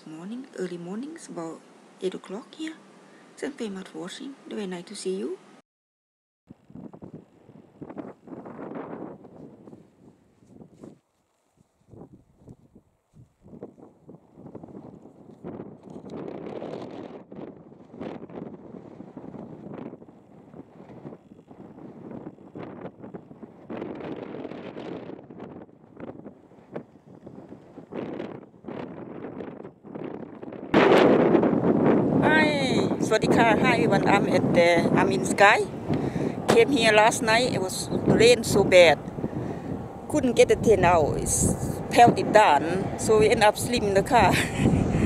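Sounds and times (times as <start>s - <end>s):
strong wind buffeting microphone: 6.5s - 11.0s, 11.6s - 45.0s.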